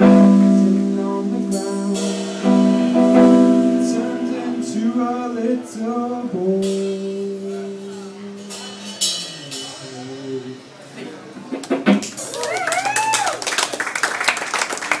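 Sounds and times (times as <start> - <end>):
acoustic song held note: 0.0 - 10.8
audience clapping: 11.6 - 15.0
person whooping: 12.3 - 13.6.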